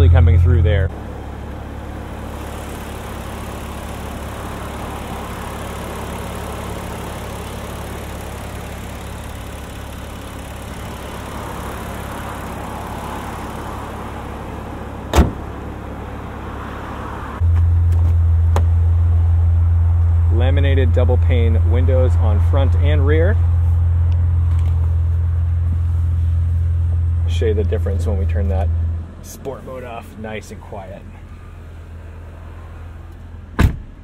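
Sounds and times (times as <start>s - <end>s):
car engine idling: 0.0s - 33.7s
car hood slamming: 15.1s - 15.6s, 33.6s - 34.0s.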